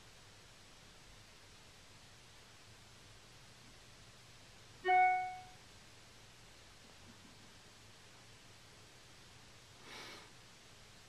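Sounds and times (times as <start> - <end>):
short electronic chime: 4.9 - 5.5.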